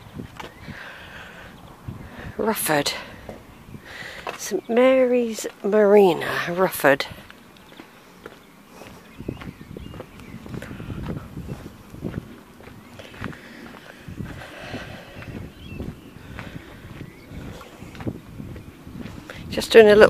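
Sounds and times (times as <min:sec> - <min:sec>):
footsteps on gravel: 0:02.5 - 0:20.0.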